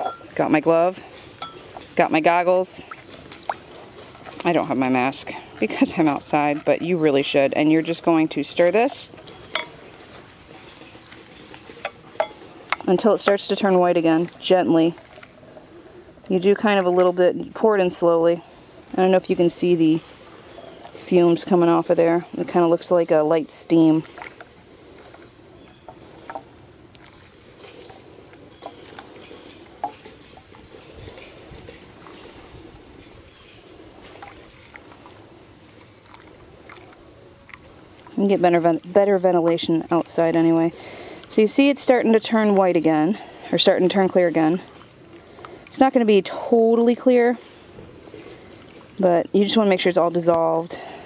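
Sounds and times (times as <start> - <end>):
insects chirping: 0.0 - 51.0.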